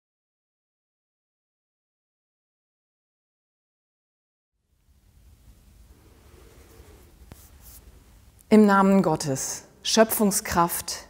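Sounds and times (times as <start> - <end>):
clothing rustle: 5.4 - 8.3.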